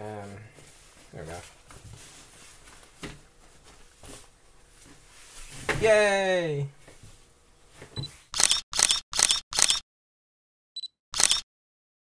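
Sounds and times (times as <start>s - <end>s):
camera shutter releases: 8.4s - 9.8s, 11.2s - 11.4s.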